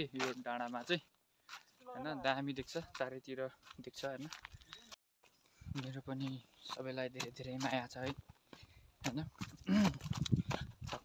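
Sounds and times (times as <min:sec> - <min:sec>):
man speaking in broken phrases: 0:00.0 - 0:01.1, 0:01.8 - 0:04.4, 0:05.7 - 0:08.2.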